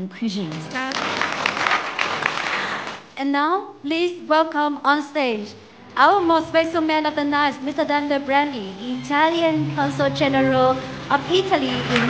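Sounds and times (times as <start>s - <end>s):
crowd applauding: 0.5s - 3.1s.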